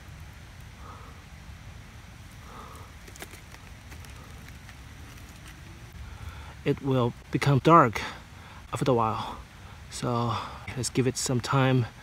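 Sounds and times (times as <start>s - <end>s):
faint clicks and crackles of mushroom: 0.0s - 1.4s, 2.1s - 9.2s.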